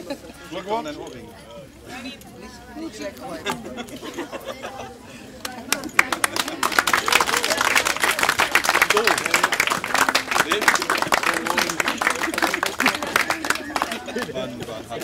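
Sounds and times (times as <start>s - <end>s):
voices chatting and laughing: 0.0s - 15.0s
crowd applauding: 5.4s - 15.0s.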